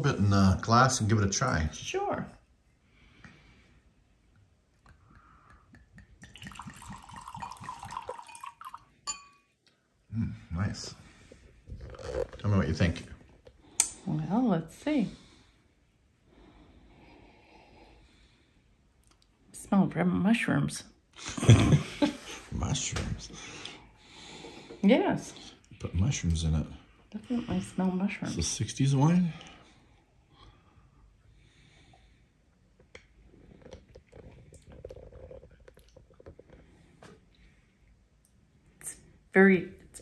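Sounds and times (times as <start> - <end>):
person sipping and breathing: 4.9 - 8.8, 11.0 - 12.4, 29.4 - 38.0.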